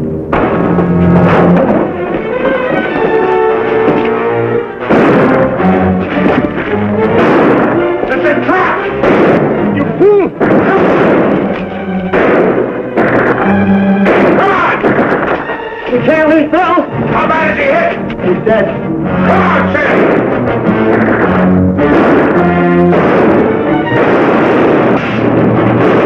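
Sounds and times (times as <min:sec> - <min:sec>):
dramatic orchestral music: 0:00.0 - 0:26.0
gunshots: 0:00.3 - 0:16.3, 0:17.2 - 0:26.0.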